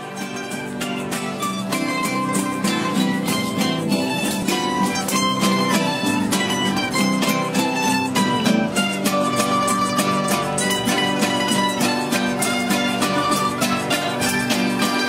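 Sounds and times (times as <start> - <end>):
plucked-string ensemble playing: 0.0 - 15.0.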